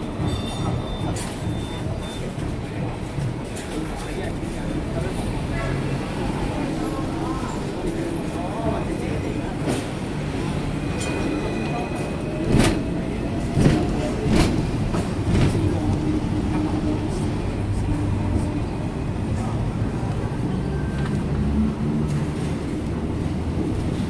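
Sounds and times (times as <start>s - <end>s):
tram rumbling on track: 0.0s - 24.0s.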